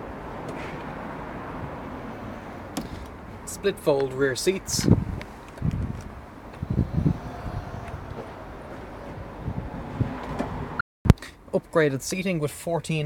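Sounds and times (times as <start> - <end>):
camera handling thumps and rustles: 2.8 - 3.2.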